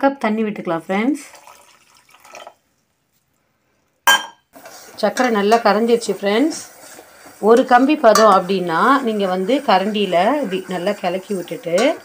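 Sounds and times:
water pouring into a pot: 1.1s - 2.6s, 8.4s - 12.0s.

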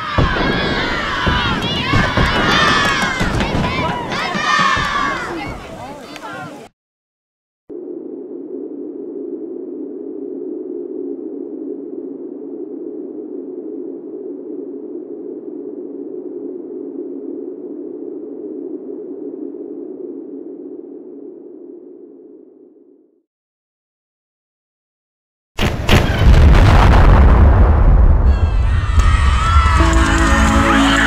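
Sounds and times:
steady low drone: 7.7s - 23.0s, 28.0s - 31.0s.

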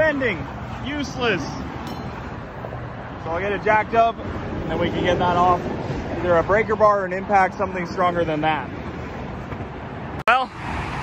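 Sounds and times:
highway traffic going by: 0.0s - 11.0s.

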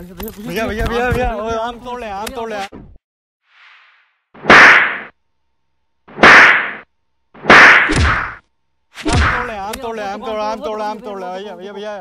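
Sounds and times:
loud slap hits: 4.4s - 5.2s, 6.1s - 8.4s, 9.0s - 9.5s.

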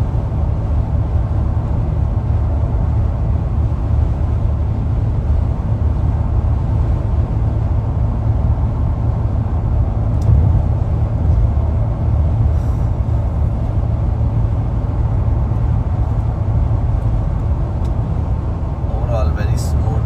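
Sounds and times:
road and tyre rumble inside car: 0.0s - 20.0s.

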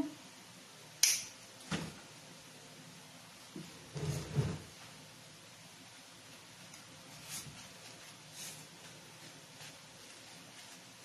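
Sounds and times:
sharp bright click: 1.0s - 1.4s.

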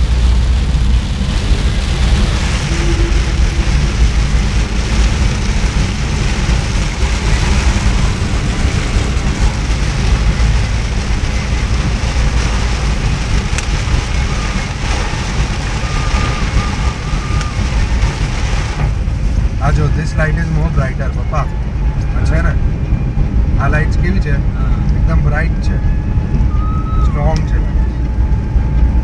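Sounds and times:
deep low rumble: 0.0s - 29.0s
rain on car body: 0.0s - 29.0s
tyres on wet road: 0.0s - 29.0s.

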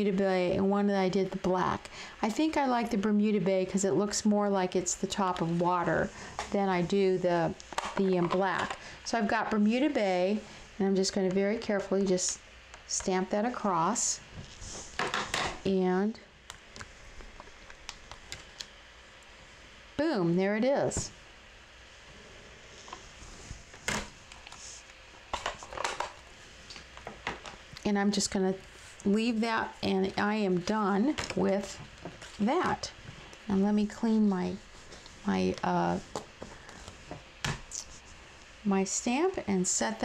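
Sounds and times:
soft rustle: 31.6s - 37.1s.

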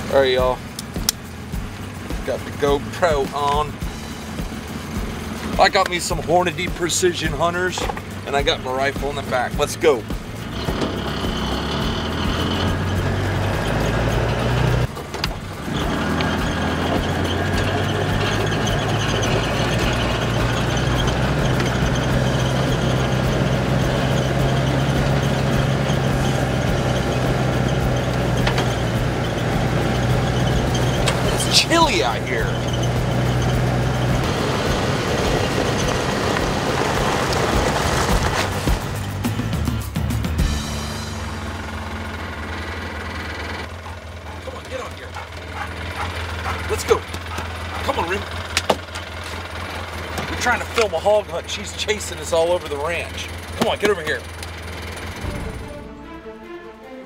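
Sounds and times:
background music: 0.0s - 42.4s, 49.6s - 57.0s
utility vehicle engine running: 0.0s - 57.0s.

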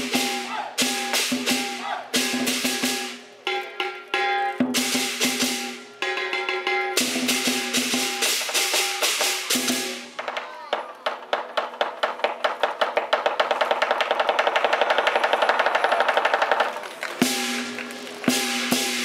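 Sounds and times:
drum beating: 0.0s - 19.0s.

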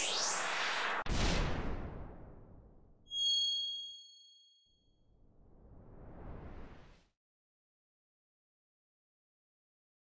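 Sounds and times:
bright bell-like chime: 3.1s - 4.7s.

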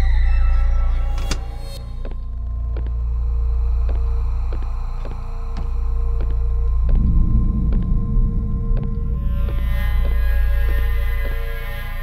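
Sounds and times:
deep droning rumble: 1.8s - 12.0s.

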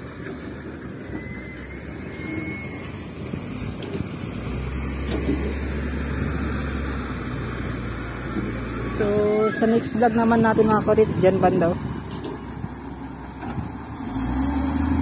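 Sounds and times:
engine humming: 0.0s - 15.0s
outdoor rumble: 0.0s - 15.0s.

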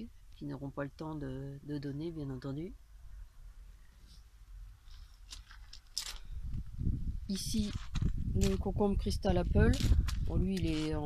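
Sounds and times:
rustling crunches: 4.0s - 8.8s
low rumbling handling noise: 4.5s - 11.0s.

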